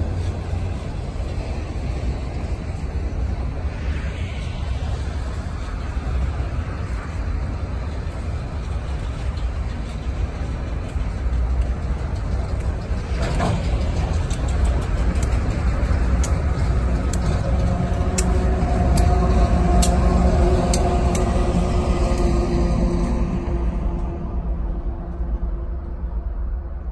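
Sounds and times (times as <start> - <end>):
diesel locomotive engine drone: 0.0 - 26.9
freight cars rolling on rails: 0.0 - 26.9.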